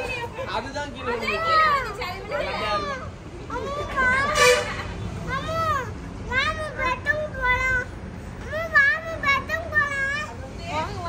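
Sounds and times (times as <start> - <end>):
child making high-pitched calls: 5.2 - 10.4.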